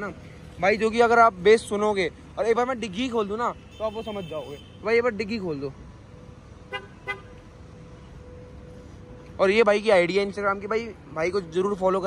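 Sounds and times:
car horn chirps: 0:03.6 - 0:04.8, 0:06.7 - 0:07.4.

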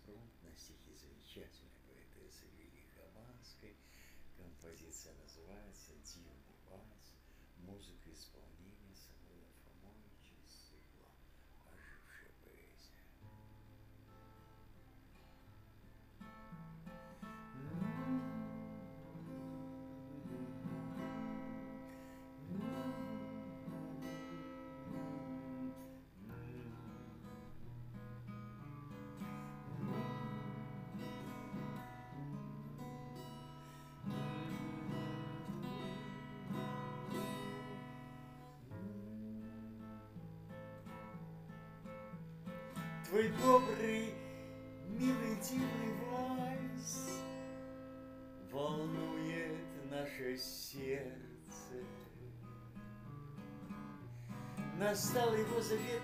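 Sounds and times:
acoustic guitar waltz: 0:13.2 - 0:56.0.

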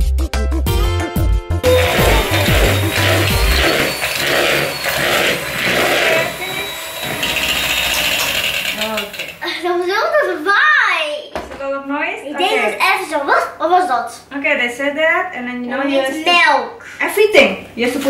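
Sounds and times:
background music: 0:00.0 - 0:05.2
electric hand mixer whirring: 0:01.6 - 0:09.4.

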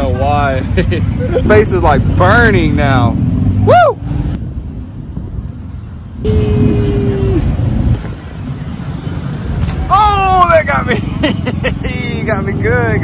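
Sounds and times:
vehicle engines rumbling: 0:00.0 - 0:13.0.

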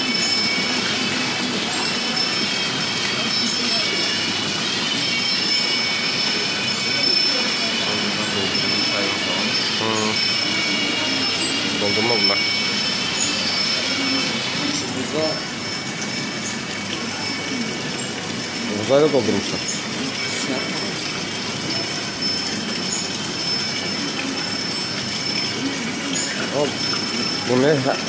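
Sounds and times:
faint steady high tones: 0:00.0 - 0:28.0
indistinct voices talking: 0:00.0 - 0:28.0
steady noisy hum: 0:00.0 - 0:28.0.

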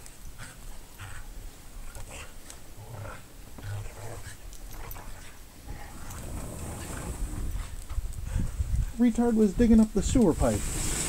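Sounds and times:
dogs play noises: 0:00.0 - 0:08.0.

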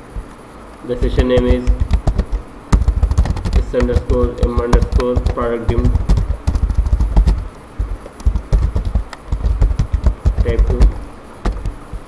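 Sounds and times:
computer keyboard typing: 0:00.9 - 0:12.0.

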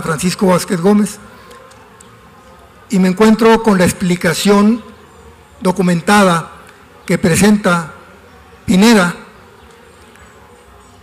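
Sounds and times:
man speaking into a microphone: 0:00.0 - 0:01.2, 0:02.9 - 0:05.0, 0:05.6 - 0:08.0, 0:08.6 - 0:09.3
faint background noise: 0:00.0 - 0:11.0.

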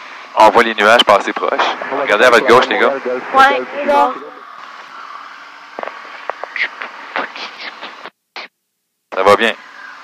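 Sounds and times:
airplane cabin drone: 0:01.2 - 0:08.2.

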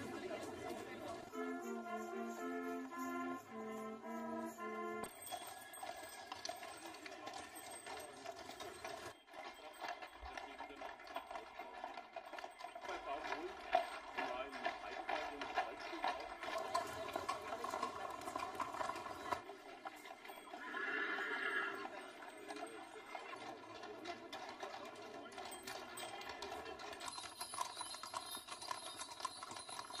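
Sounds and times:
horse hooves on asphalt: 0:00.0 - 0:30.0
horse neighing: 0:20.5 - 0:21.9.

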